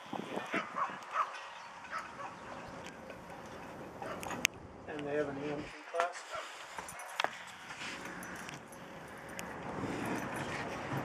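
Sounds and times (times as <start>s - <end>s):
dog barking: 0.6s - 2.4s, 4.0s - 4.3s, 6.3s - 7.2s.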